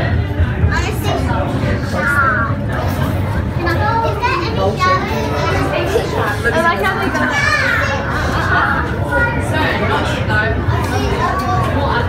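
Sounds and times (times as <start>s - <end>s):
children talking and calling out: 0.7s - 12.0s.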